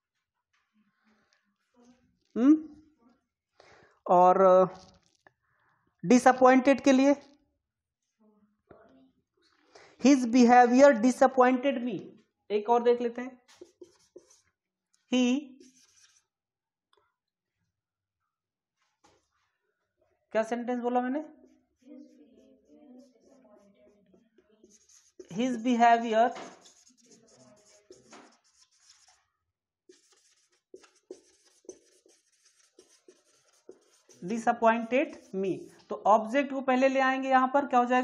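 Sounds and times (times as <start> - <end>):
marker squeaking on whiteboard: 13.4 - 14.6, 15.5 - 16.4, 21.8 - 24.0, 24.6 - 29.3, 29.9 - 36.0.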